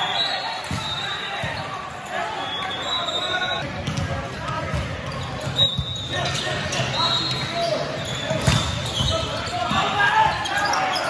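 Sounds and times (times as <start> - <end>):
indistinct voices in a gym: 0.0 - 11.0
ball bouncing on court floor: 3.7 - 6.4.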